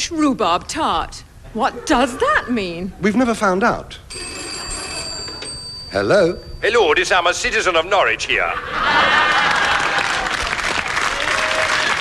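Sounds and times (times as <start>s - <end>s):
telephone bell ringing: 4.1s - 7.1s.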